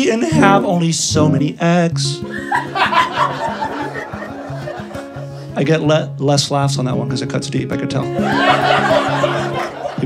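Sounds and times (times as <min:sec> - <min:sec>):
guitar playing low notes: 0:00.0 - 0:10.0
audience laughing: 0:02.2 - 0:05.7, 0:08.1 - 0:10.0.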